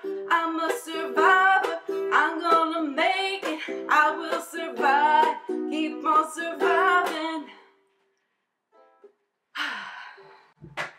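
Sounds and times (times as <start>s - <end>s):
woman's breathy sigh: 9.6s - 10.6s.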